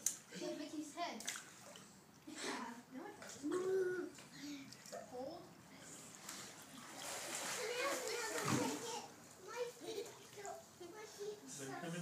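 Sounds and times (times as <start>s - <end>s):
water splashing in a pool: 1.1s - 2.0s, 6.0s - 10.7s
children's voices: 7.4s - 12.0s.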